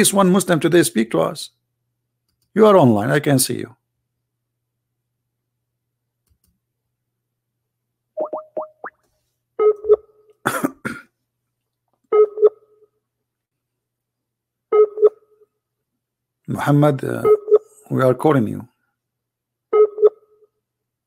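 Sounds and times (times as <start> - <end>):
rising call chirps: 8.2 - 9.0
person coughing: 10.4 - 11.2.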